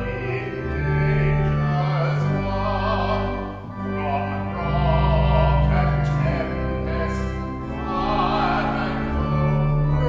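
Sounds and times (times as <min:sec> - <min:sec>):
choir singing slowly: 0:00.0 - 0:10.0.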